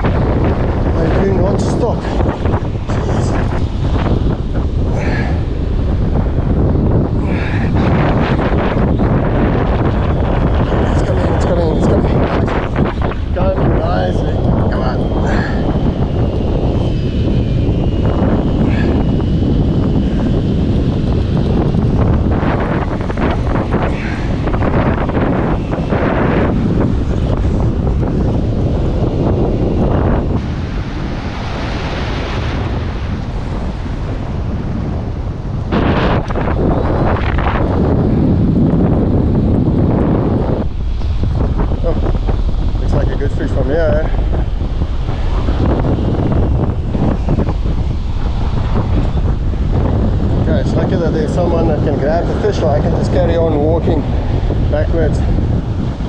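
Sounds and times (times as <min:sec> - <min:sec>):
breaking surf: 0:00.0 - 0:56.0
wind buffeting microphone: 0:00.0 - 0:56.0.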